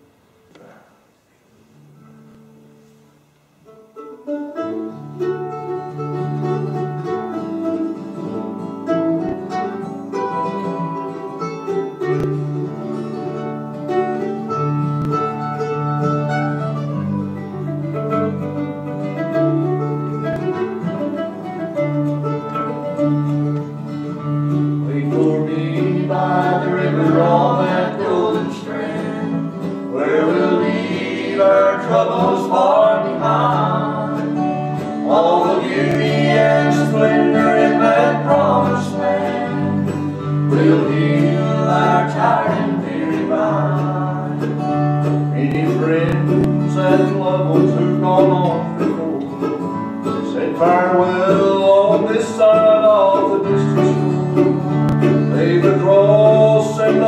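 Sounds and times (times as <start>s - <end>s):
acoustic guitar: 0.0s - 57.0s
mandolin: 1.8s - 57.0s.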